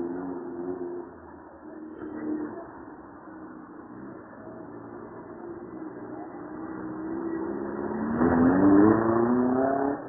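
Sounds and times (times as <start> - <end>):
car engine accelerating past: 6.6 - 10.0.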